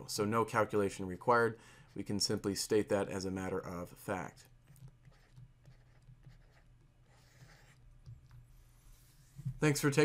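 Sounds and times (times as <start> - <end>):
stylus scratching: 4.2 - 7.9.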